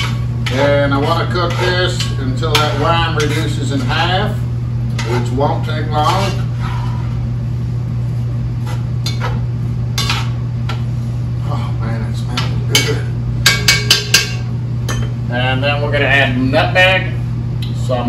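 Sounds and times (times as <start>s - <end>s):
utensil stirring in a pot: 0.0s - 7.3s
steady low hum: 0.0s - 18.0s
sharp taps on a pot: 12.8s - 15.0s.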